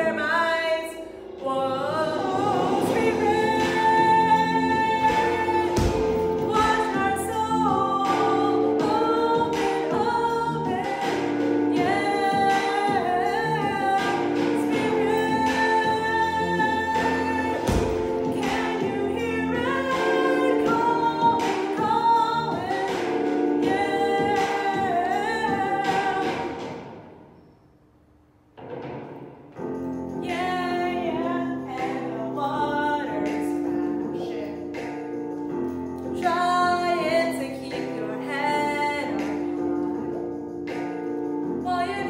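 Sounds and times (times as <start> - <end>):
woman singing lead: 0.0 - 26.8, 30.2 - 35.1, 36.0 - 42.0
gospel-style pop song: 0.0 - 27.2, 29.6 - 42.0.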